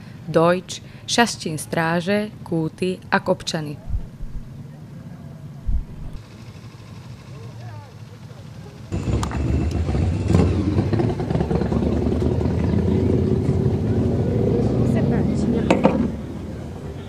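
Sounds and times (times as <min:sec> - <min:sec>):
people talking: 0:00.3 - 0:04.1, 0:13.8 - 0:16.1
motorcycle engines running: 0:01.7 - 0:17.0.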